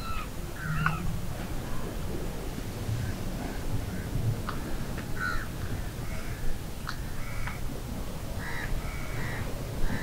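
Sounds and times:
low background rumble: 0:00.0 - 0:08.4
crows cawing: 0:05.2 - 0:06.4, 0:08.4 - 0:09.4.

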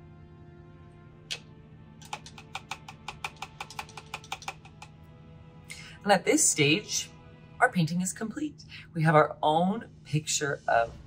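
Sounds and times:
paintbrush clicking against glass jar: 0:02.0 - 0:05.0.

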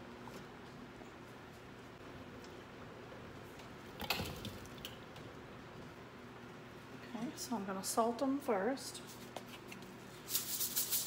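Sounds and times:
low steady hum: 0:00.0 - 0:10.3.

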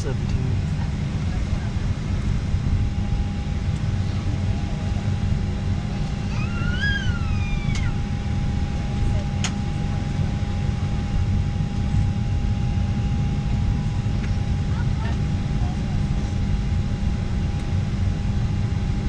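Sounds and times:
airliner cabin rumble: 0:00.0 - 0:19.0.

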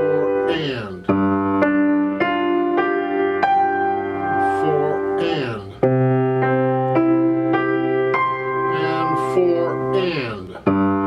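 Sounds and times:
grand piano played slowly: 0:00.0 - 0:11.0.

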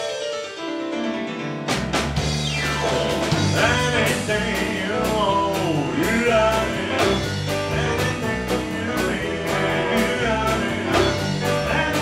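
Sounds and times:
keyboard playing piano: 0:00.0 - 0:12.0
drum hit: 0:01.7 - 0:08.8
bass: 0:01.7 - 0:12.0.

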